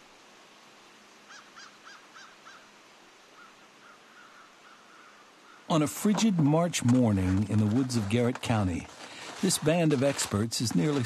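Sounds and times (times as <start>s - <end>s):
faint steady hiss: 0.0s - 11.0s
bird calling: 1.3s - 2.7s, 3.3s - 8.2s.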